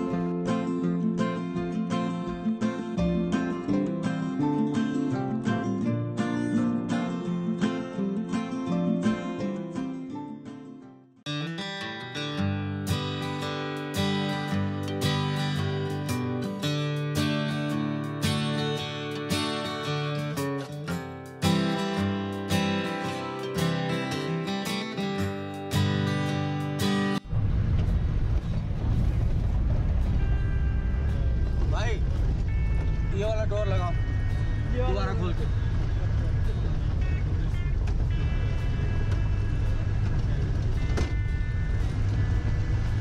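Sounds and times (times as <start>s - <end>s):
strummed acoustic guitar music: 0.0s - 28.3s, 28.9s - 43.0s
vehicle rumbling on gravel road: 27.2s - 43.0s.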